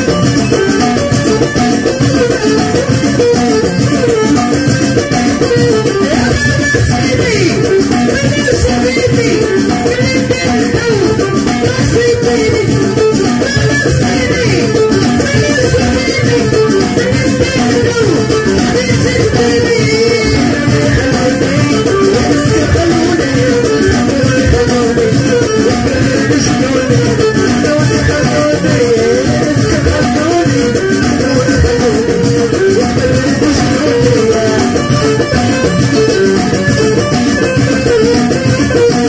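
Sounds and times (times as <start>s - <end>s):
percussion rhythm: 0.0s - 39.0s
woman singing into microphone: 5.9s - 35.0s.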